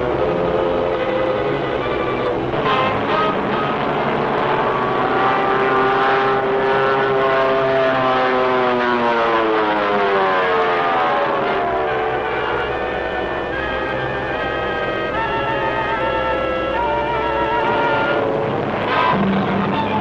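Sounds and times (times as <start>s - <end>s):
propeller plane engines droning: 0.0s - 20.0s.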